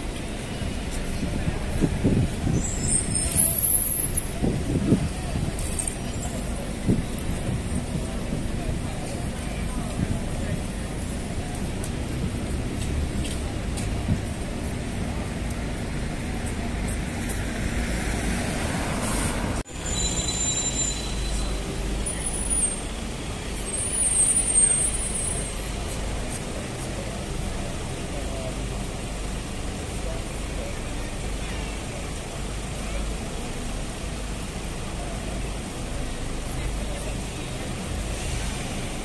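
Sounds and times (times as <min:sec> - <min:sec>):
traffic rumble: 0:00.0 - 0:39.0
high-pitched squeal: 0:19.0 - 0:22.9.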